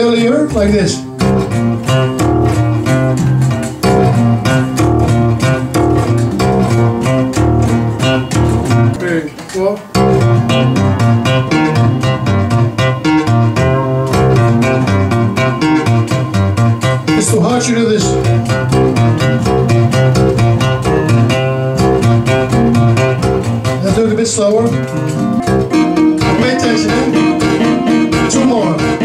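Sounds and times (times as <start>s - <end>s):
tapped string instrument: 0.2s - 29.0s.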